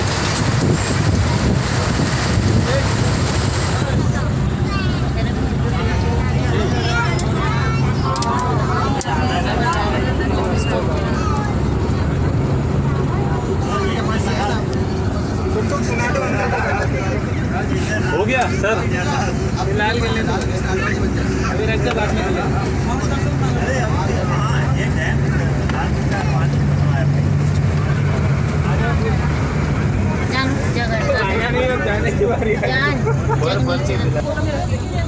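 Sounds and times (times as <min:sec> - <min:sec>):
bus engine drone: 0:00.0 - 0:35.0
people talking: 0:00.0 - 0:35.0
road noise: 0:00.0 - 0:35.0.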